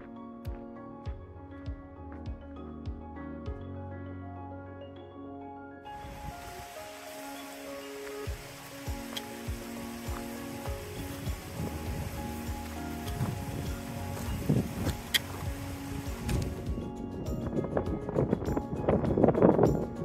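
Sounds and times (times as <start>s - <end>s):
background music with held tones: 0.0s - 20.0s
wind hiss: 5.9s - 20.0s
footsteps crunching on gravel: 6.0s - 16.7s.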